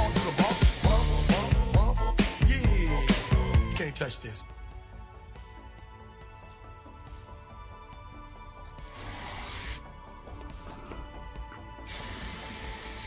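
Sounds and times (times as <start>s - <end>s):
background music: 0.0s - 13.0s
aerosol spray can hissing: 8.8s - 9.9s, 11.8s - 13.0s.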